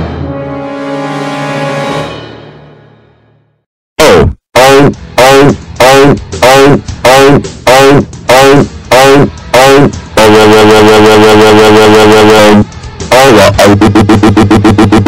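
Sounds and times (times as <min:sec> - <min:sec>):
distorted falling electronic tone: 0:04.0 - 0:15.0
held distorted electronic tone: 0:04.0 - 0:15.0.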